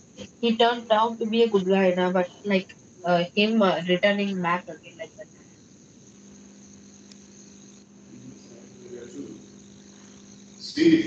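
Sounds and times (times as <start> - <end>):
low hum: 0.0 - 11.0
thin high-pitched whine: 0.0 - 11.0.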